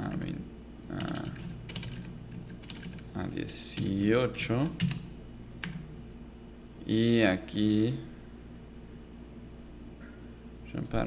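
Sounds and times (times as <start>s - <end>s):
computer keyboard keystrokes: 1.0s - 3.0s, 3.8s - 5.8s.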